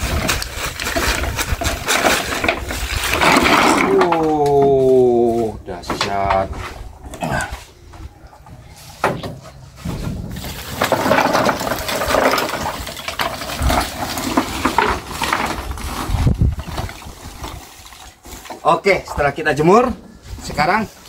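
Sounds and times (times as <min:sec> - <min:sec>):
coconut shells clattering on wood: 0:00.0 - 0:04.8, 0:10.4 - 0:17.6
shells being raked: 0:10.4 - 0:16.3.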